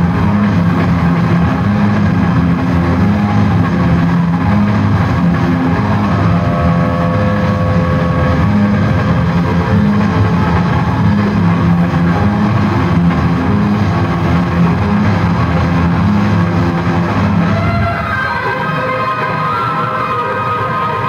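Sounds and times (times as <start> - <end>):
sustained guitar notes: 0.0 - 21.0.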